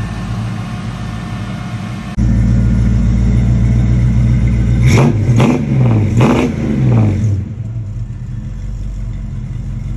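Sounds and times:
car engine revving and idling: 0.0s - 9.9s.

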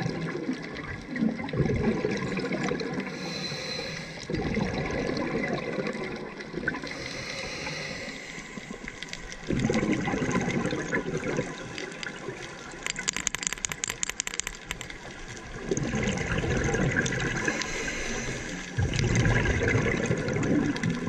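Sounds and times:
bubbling underwater exhalations: 1.1s - 3.6s, 4.3s - 8.8s, 9.4s - 12.3s, 15.6s - 17.9s, 18.8s - 21.0s
regulator inhaling hiss: 3.1s - 4.3s, 6.8s - 9.0s, 17.4s - 18.6s.

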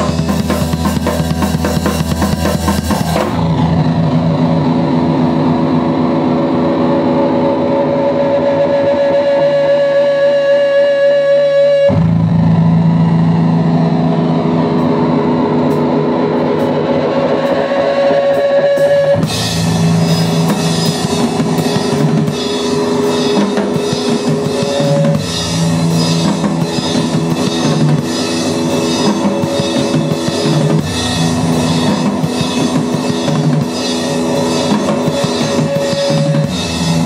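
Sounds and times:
drums and cymbals: 0.0s - 13.5s, 14.2s - 37.0s
electric guitar ringing chords: 0.0s - 37.0s.

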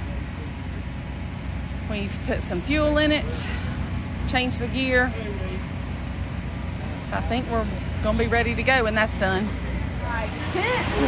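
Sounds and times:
low rumble of engines: 0.0s - 11.0s.

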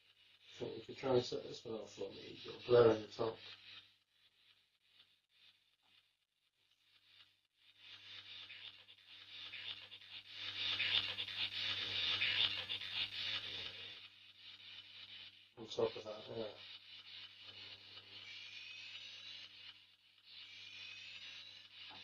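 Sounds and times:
scratchy rubbing and rustling: 0.0s - 22.0s.

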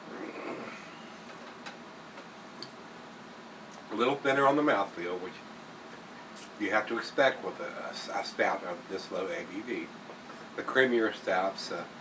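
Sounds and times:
room hum: 0.0s - 12.0s.

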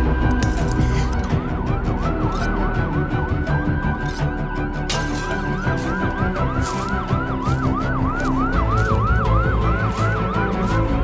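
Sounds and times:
background music: 0.0s - 11.0s
police siren wailing: 0.0s - 11.0s.

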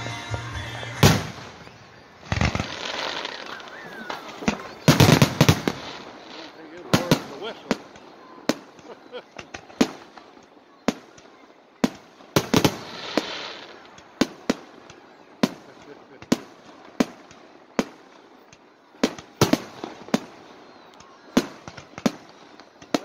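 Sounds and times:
fireworks bangs: 0.0s - 23.0s
firework hiss: 1.0s - 11.0s, 12.4s - 20.6s.

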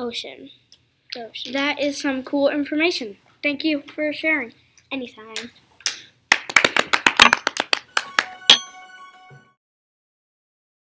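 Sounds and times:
small group clapping: 5.4s - 8.8s
bell-like ringing tone: 7.9s - 9.6s.

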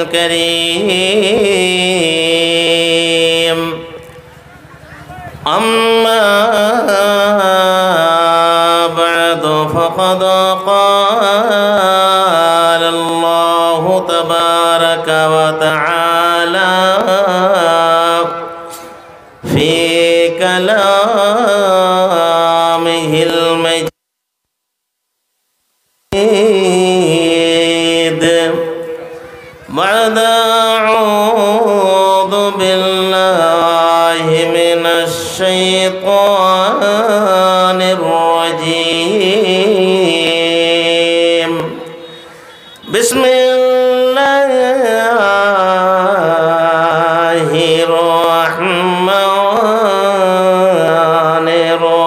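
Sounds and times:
man chanting unaccompanied: 0.0s - 24.0s, 26.1s - 52.0s.

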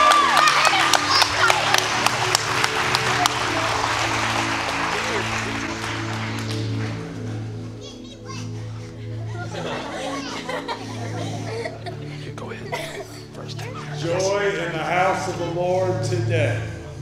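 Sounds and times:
congregation applauding: 0.0s - 7.6s
soft background music: 0.0s - 17.0s.

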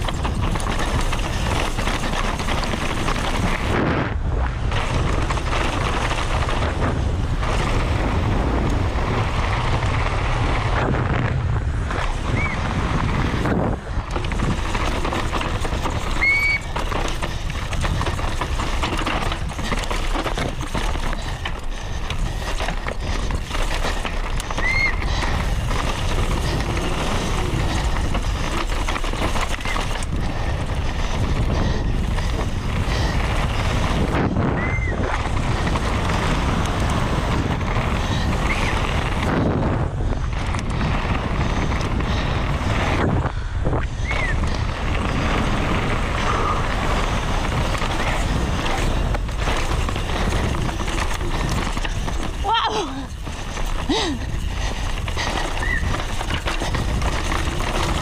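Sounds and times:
bike knocking and rattling: 0.0s - 58.0s
wind and tyre noise: 0.0s - 58.0s.

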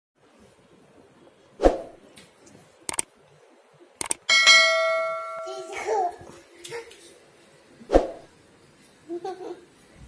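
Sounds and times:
bright bell ding: 4.3s - 5.9s.

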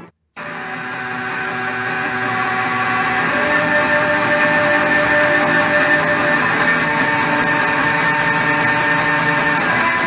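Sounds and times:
fast high ticking rhythm: 3.4s - 10.0s.

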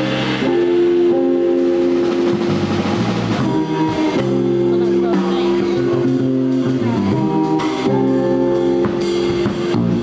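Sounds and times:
bass line: 0.0s - 10.0s
cymbals: 0.0s - 10.0s
live instrumental jazz: 0.0s - 10.0s.

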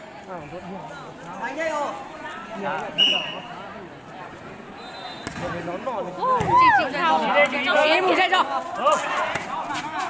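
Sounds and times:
spectators chattering: 0.0s - 10.0s
volleyball smack: 5.2s - 5.6s.

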